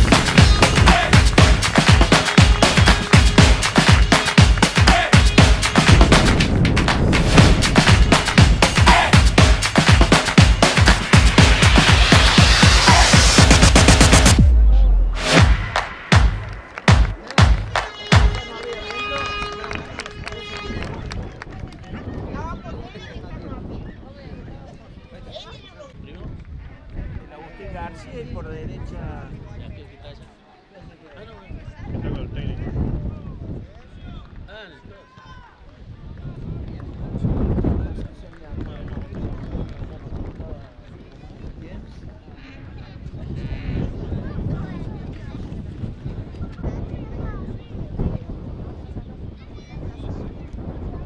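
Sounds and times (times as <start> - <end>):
indistinct shouts and calls: 0.0 - 2.0, 4.6 - 5.4, 8.6 - 9.4
people calling out outdoors: 0.0 - 3.4, 4.0 - 5.8, 8.6 - 9.4, 34.7 - 36.0
held horn note: 0.0 - 21.4
wind rumble on microphone: 5.9 - 8.6, 19.6 - 30.3, 31.2 - 35.0, 35.6 - 51.0.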